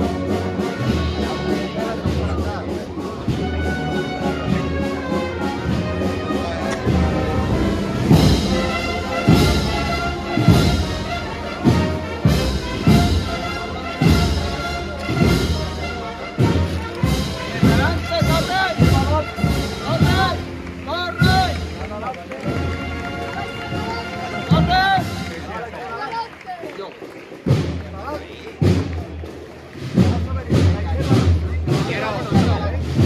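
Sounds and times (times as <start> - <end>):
steady drum beat: 0.0 - 25.6, 27.3 - 33.0
brass band playing a march: 0.0 - 33.0.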